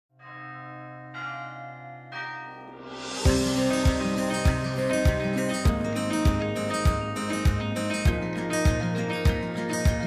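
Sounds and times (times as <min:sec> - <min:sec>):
carillon bells ringing: 0:00.2 - 0:05.7.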